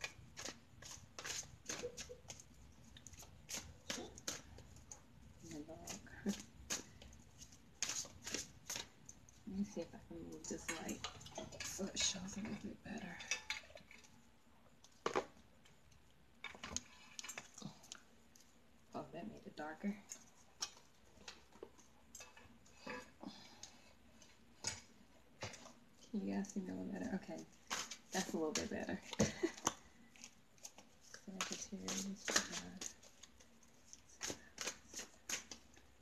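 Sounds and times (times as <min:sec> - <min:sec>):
cards being shuffled: 0:30.6 - 0:35.7.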